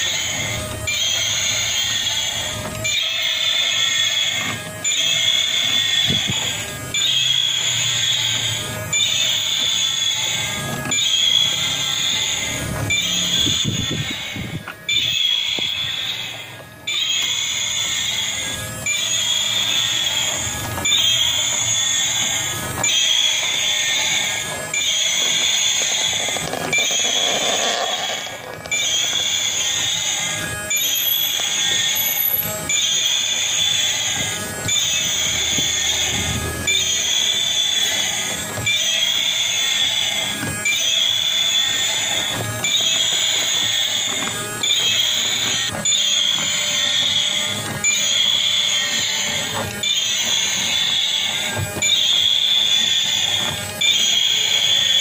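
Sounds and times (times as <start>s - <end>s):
toy electronic sound loop: 0.0s - 55.0s
toy motor whirring and clattering: 0.0s - 55.0s.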